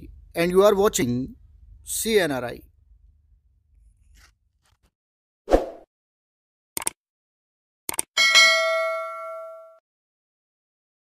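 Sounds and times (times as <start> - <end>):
notification bell chime: 8.2 - 9.8.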